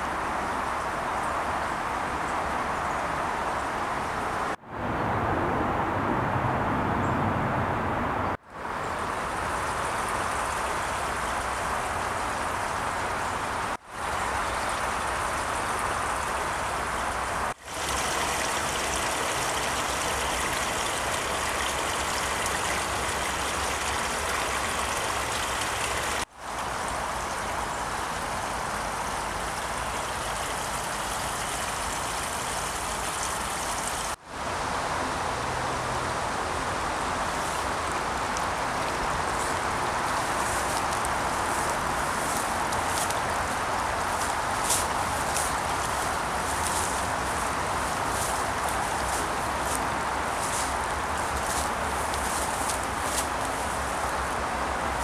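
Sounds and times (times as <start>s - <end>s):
stream water running over stones: 8.1s - 55.0s.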